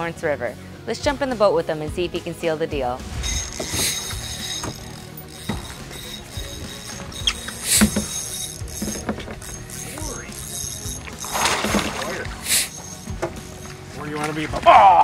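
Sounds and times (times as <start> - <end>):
fishing reel cranking: 3.1 - 14.0.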